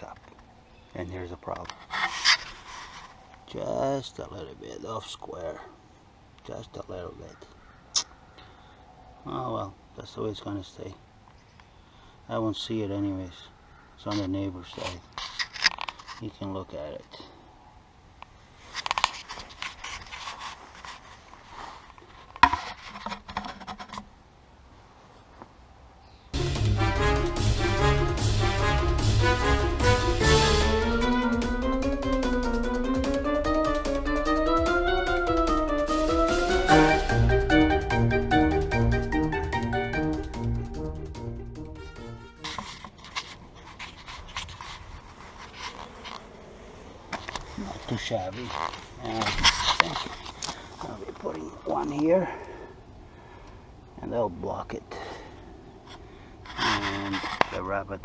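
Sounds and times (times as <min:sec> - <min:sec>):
scraping and clicking handling noise: 0:14.2 - 0:16.3, 0:18.7 - 0:24.1, 0:42.4 - 0:46.3
loud brass-led music: 0:26.4 - 0:42.6.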